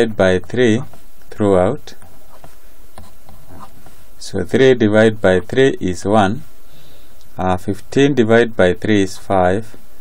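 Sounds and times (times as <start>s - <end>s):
buzzing hum and hiss: 0.0s - 10.0s.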